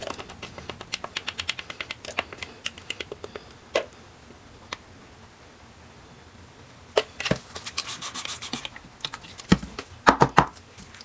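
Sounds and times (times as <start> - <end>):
poured soap clicking and ticking: 0.0 - 3.6.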